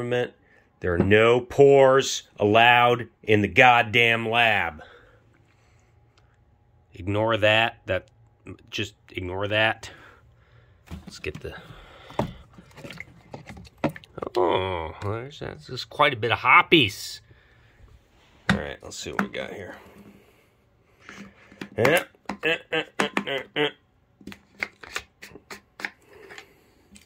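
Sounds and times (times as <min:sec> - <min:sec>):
bottles and cans knocking: 0:21.5 - 0:23.4.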